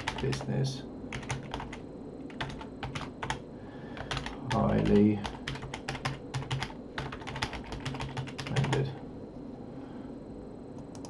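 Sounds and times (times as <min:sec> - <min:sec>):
typing on keyboard: 0:00.0 - 0:00.5, 0:01.1 - 0:03.4, 0:04.0 - 0:08.9.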